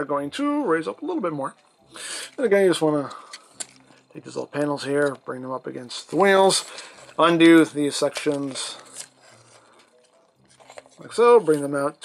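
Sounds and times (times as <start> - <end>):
plastic toy handling: 3.1 - 4.1, 6.0 - 11.8.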